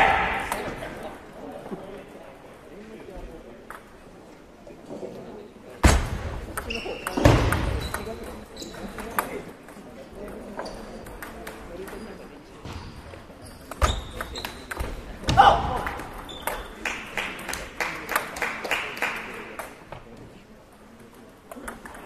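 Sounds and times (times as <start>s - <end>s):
loud shout: 0.0s - 0.8s.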